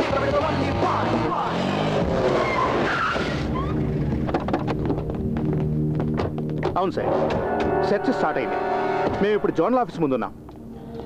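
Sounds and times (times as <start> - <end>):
cars driving fast: 0.0 - 4.3
tyres skidding: 0.0 - 9.4
background music score: 3.8 - 11.0
steady low drone: 3.8 - 11.0.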